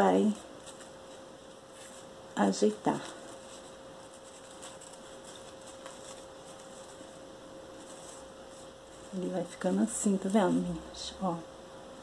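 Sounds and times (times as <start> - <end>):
ribbon rustling: 0.0 - 10.9
faint electrical hum: 0.0 - 12.0.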